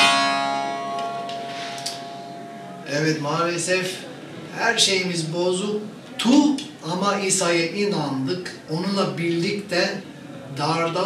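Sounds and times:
long-necked lute strummed chord: 0.0 - 3.0.

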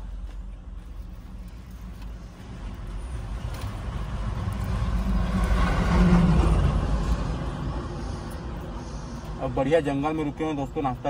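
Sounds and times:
vehicle passing by: 2.4 - 10.8.

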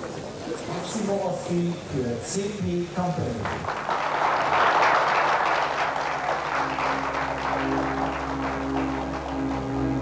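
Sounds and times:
audience applauding: 3.4 - 10.0
low music tones: 5.3 - 10.0.

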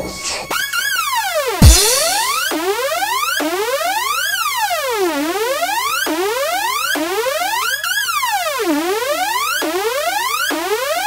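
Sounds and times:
synthesizer tone sweeping like siren: 0.5 - 11.0.

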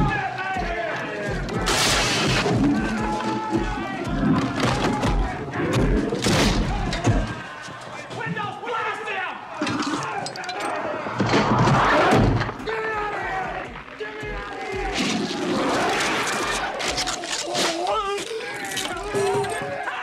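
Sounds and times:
people screaming and yelling: 0.0 - 20.0.

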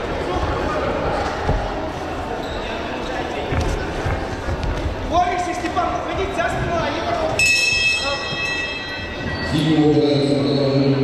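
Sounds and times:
voices in a large hall: 0.0 - 11.0.

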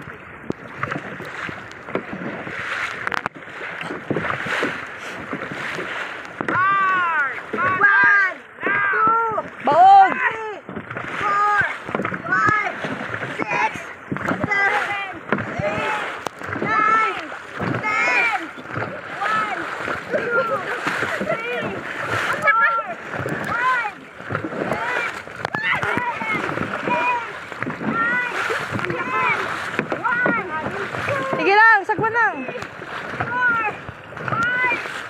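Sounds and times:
paddles splashing through water: 0.0 - 35.0
raised voices calling out: 6.5 - 34.9
crew shouting: 24.7 - 31.4.

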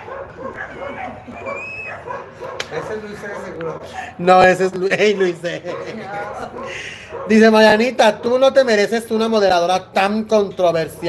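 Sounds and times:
small dog whining and yipping: 0.4 - 2.2.

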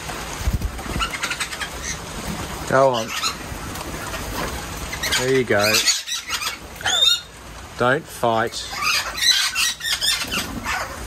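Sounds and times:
birds fluttering: 0.0 - 11.0
steady hiss: 0.0 - 11.0
parrot calls: 0.8 - 7.5, 8.4 - 11.0.

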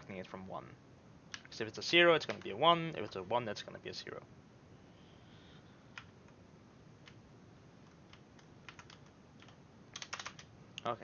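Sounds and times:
computer keyboard typing: 7.8 - 10.5.

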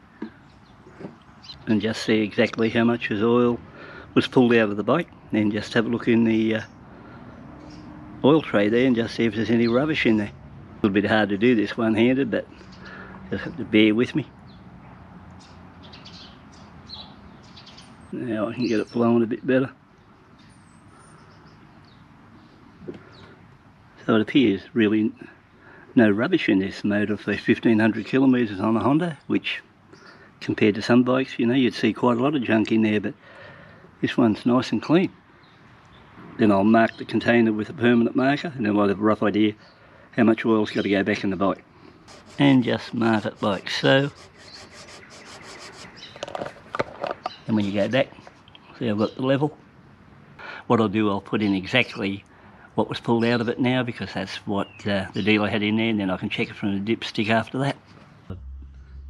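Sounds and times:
marker scratching on plastic: 42.1 - 47.2
low background hum: 58.1 - 59.0.

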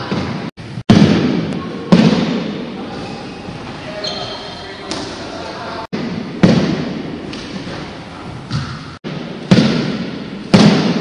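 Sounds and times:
voices: 1.5 - 5.9.

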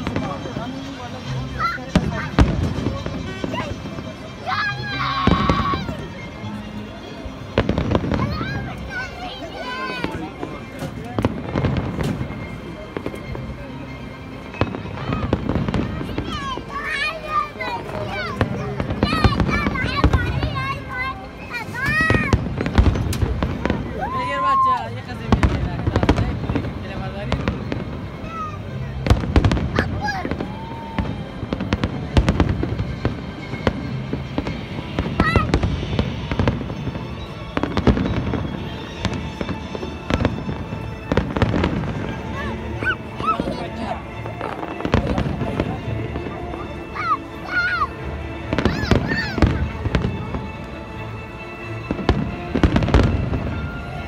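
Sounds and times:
crowd voices: 0.0 - 54.0
fireworks bursting: 0.0 - 54.0.

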